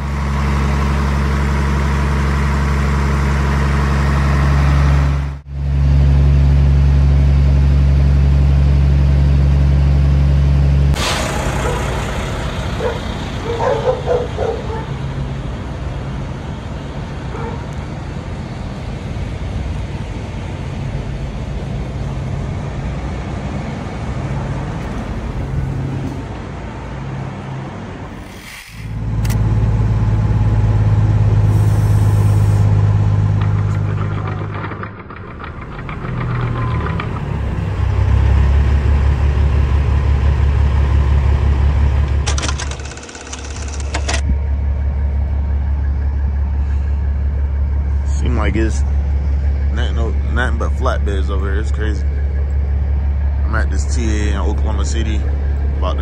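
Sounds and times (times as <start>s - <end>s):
diesel truck engines humming: 0.0s - 56.0s.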